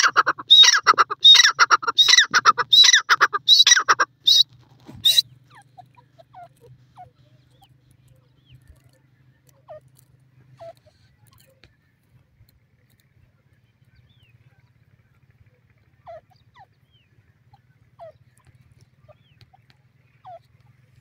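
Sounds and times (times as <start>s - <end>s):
francolin calling loud repeated notes: 0.0s - 4.4s.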